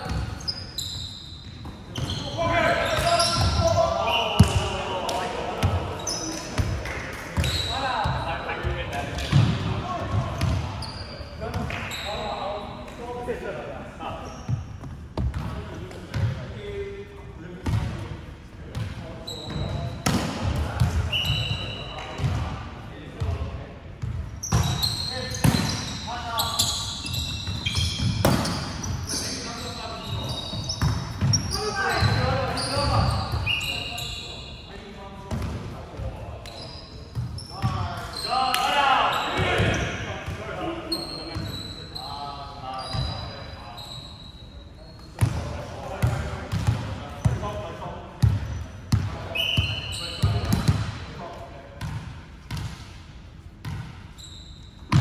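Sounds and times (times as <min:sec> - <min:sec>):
sneaker squeaks: 0:00.0 - 0:04.9, 0:05.6 - 0:06.8, 0:07.4 - 0:13.0, 0:14.1 - 0:16.8, 0:18.8 - 0:22.5, 0:24.0 - 0:47.5, 0:48.2 - 0:51.0, 0:51.8 - 0:52.7, 0:53.6 - 0:55.0.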